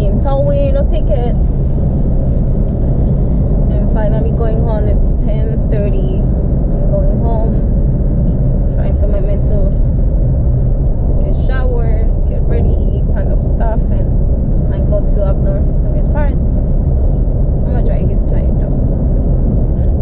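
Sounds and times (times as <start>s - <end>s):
road and engine rumble in car: 0.0s - 20.0s.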